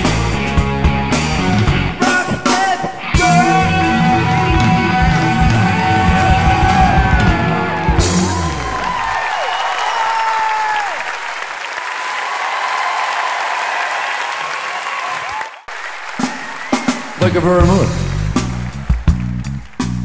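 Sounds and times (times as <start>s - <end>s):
rock band chord ringing: 0.0s - 8.7s
audience applauding and cheering: 3.1s - 20.0s
whistles from audience: 15.0s - 17.3s.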